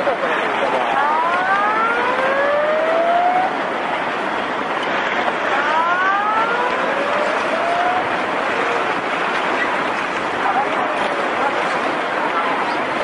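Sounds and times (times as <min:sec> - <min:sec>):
rushing roar of floodwater: 0:00.0 - 0:13.0
siren wailing: 0:00.8 - 0:03.8, 0:05.5 - 0:08.9.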